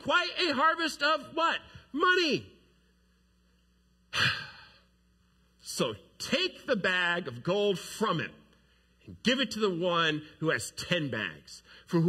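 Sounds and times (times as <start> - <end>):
man sighing: 4.1 - 4.8.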